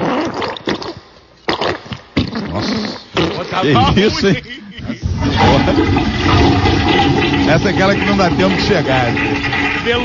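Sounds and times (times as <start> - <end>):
toilet flushing: 5.0 - 10.0.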